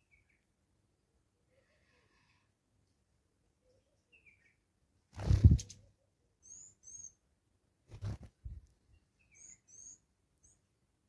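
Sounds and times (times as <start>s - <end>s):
birds high-pitched calls: 5.2s - 7.2s, 9.0s - 10.6s.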